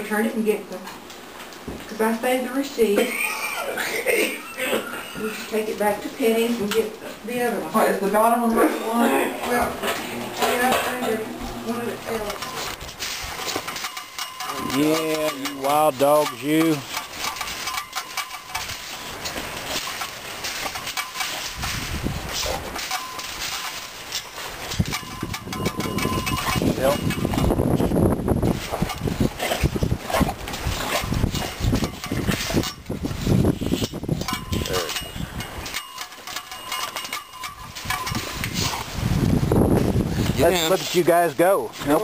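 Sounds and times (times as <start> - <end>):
chain-link fence rattling: 12.2 - 28.0, 28.6 - 39.0.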